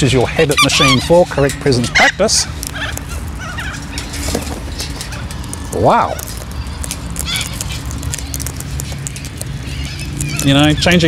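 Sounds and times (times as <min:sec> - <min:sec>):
cockatoos chattering: 0:00.0 - 0:11.0
low background rumble: 0:00.0 - 0:11.0.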